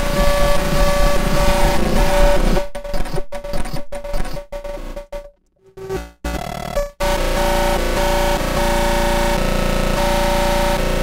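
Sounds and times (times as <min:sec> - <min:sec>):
stuttering electronic drums: 0:00.0 - 0:09.3.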